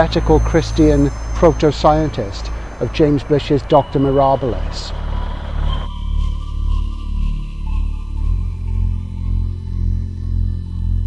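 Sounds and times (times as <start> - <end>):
pulsing low drone music: 0.0 - 11.0.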